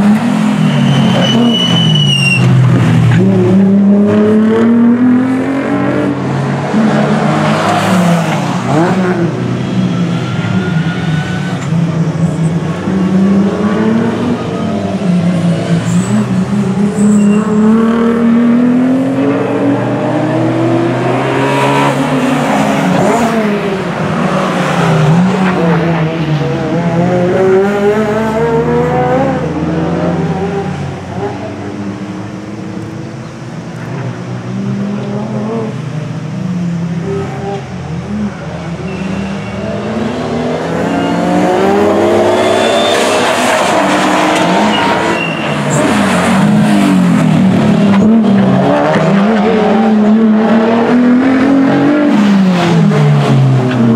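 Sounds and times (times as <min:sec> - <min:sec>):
racing car engines: 0:00.0 - 0:53.9.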